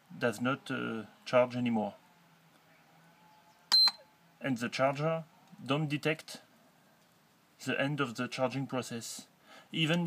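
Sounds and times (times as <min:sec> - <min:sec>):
high-pitched key beep: 0:03.7 - 0:04.0.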